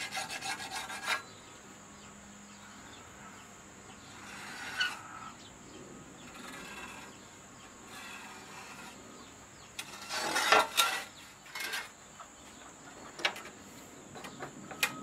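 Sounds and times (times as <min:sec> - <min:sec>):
marker scratching on metal: 0:00.0 - 0:01.3, 0:04.1 - 0:05.3, 0:06.2 - 0:09.1
metal blade scraping on wood: 0:00.0 - 0:01.4, 0:04.0 - 0:05.4, 0:06.2 - 0:12.2.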